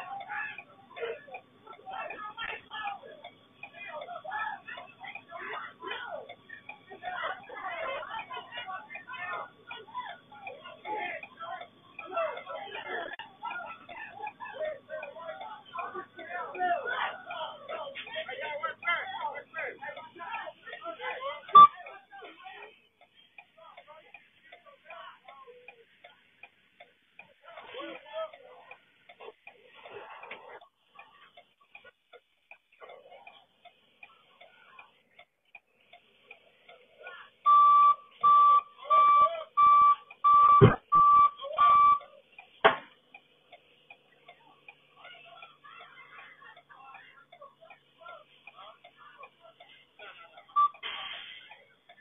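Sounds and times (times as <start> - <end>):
faint voices: 0.0 - 52.0
electronic warning beeps: 21.5 - 21.8, 37.4 - 42.1, 50.5 - 50.9.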